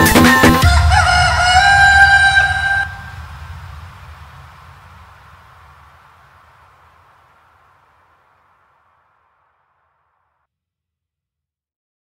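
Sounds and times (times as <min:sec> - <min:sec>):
electronic dance beat: 0:00.0 - 0:07.7
rooster crow: 0:00.6 - 0:04.3
low rumble: 0:00.6 - 0:10.0.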